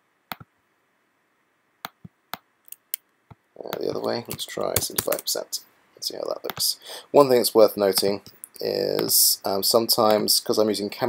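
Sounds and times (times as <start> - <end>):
keyboard and mouse clicks: 1.8 - 5.3.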